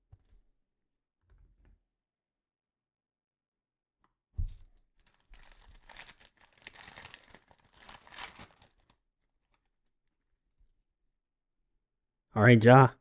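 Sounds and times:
foil wrapper crinkling and tearing: 4.8 - 9.6.

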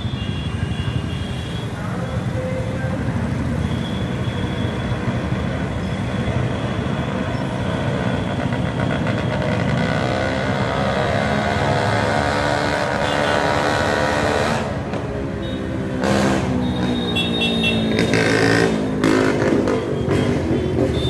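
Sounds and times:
street traffic rumble: 0.0 - 21.0.

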